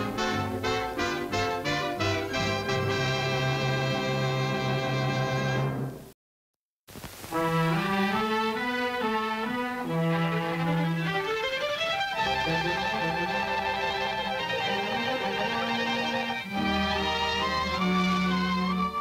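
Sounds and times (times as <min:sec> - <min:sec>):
cartoon orchestral music: 0:00.0 - 0:05.9, 0:07.4 - 0:19.0.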